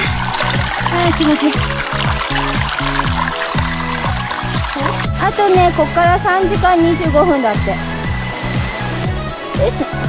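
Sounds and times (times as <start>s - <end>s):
background music with steady beat: 0.0s - 10.0s.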